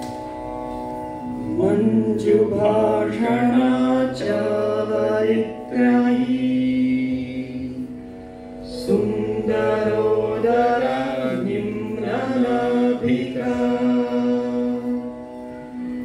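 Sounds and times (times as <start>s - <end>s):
low held drone note: 0.0s - 16.0s
person singing melodic chant: 1.3s - 16.0s.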